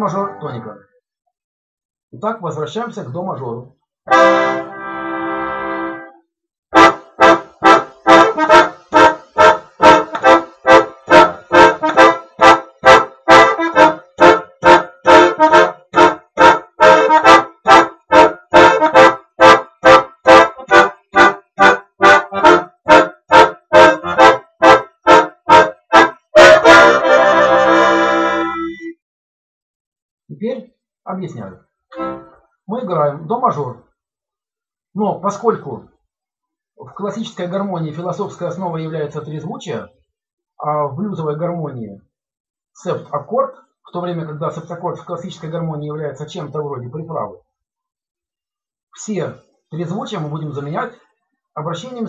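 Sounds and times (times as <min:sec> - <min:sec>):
button accordion playing chords: 0:04.1 - 0:06.1, 0:06.7 - 0:28.9, 0:31.9 - 0:32.4.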